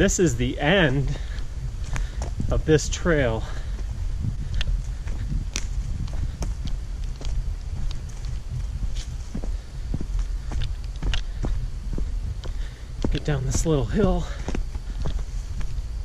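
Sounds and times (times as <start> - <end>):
footsteps on leaves and twigs: 0.0 - 16.0
low microphone rumble: 0.0 - 16.0.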